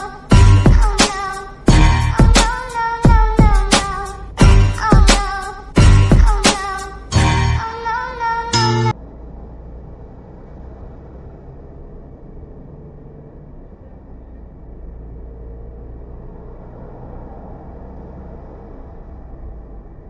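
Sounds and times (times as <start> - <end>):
car driving on highway rumble: 0.0 - 7.2, 7.8 - 20.0
music: 0.0 - 7.9, 8.5 - 9.0.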